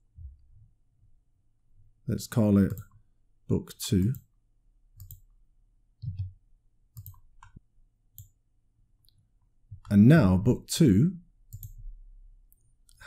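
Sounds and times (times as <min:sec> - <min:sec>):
computer keyboard and mouse clicks: 0:05.0 - 0:05.3, 0:07.0 - 0:07.6, 0:11.5 - 0:11.8.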